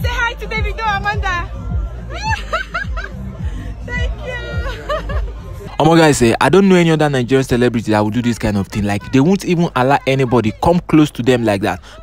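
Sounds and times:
music with deep sliding bass: 0.0s - 8.7s.

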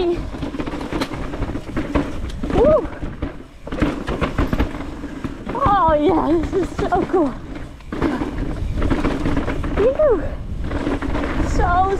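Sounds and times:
bike knocks and rattles on rocks: 0.0s - 11.9s.

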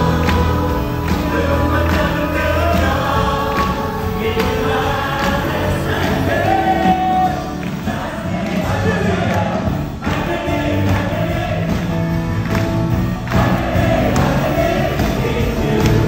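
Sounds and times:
congregation singing: 0.0s - 16.0s
worship band playing: 0.0s - 16.0s.

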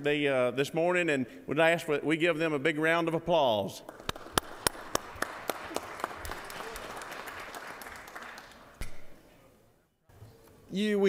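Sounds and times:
loud claps close to microphone: 3.8s - 9.2s
room full of people applauding: 3.9s - 8.8s.

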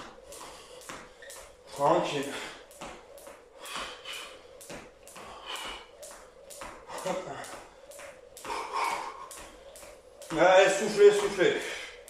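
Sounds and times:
skipping rope slapping tiled floor: 0.0s - 12.0s
heavy breathing: 0.3s - 2.7s, 3.4s - 6.2s, 6.8s - 10.0s, 11.6s - 12.0s.

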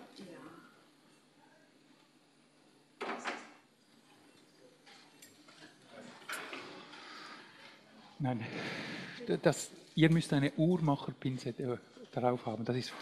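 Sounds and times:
low room hum: 0.0s - 13.0s.

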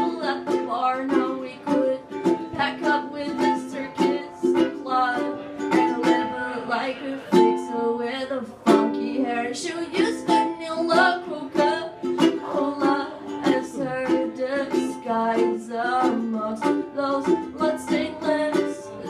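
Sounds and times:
ukulele strumming: 0.0s - 19.0s.

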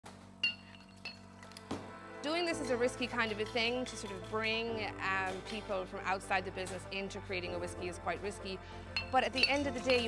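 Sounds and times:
glass bottles clinking: 9.0s - 10.0s.

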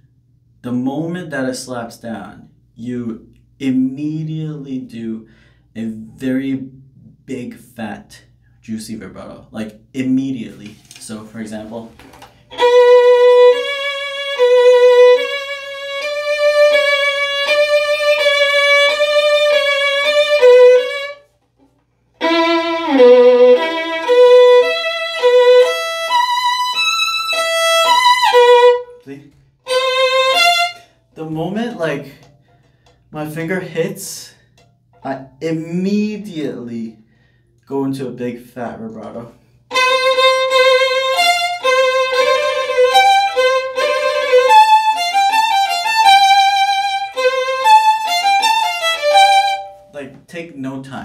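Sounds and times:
solo violin with wide vibrato: 12.4s - 21.3s, 22.2s - 29.0s, 29.6s - 30.9s, 39.7s - 49.9s.

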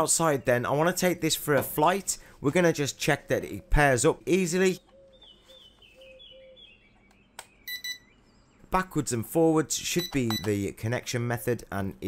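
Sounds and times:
faint bird chirping: 3.1s - 8.8s.

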